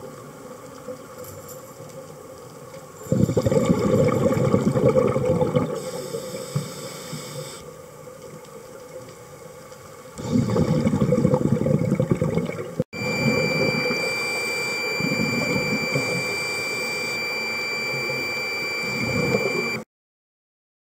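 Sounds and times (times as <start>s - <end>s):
underwater rushing water: 2.2s - 19.8s
faint high-pitched whine: 13.0s - 19.8s.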